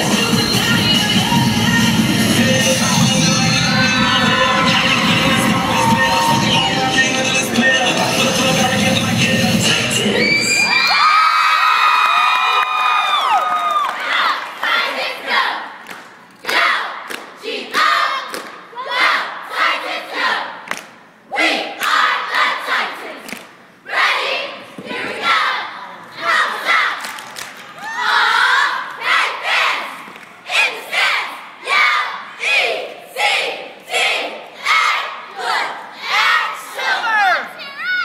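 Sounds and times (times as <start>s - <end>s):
backing music: 0.0s - 10.2s
crowd cheering and screaming: 3.8s - 7.0s, 10.0s - 14.0s.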